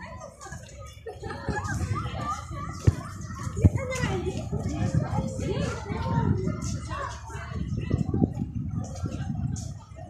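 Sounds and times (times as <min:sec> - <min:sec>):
children chattering and calling: 0:00.0 - 0:10.0.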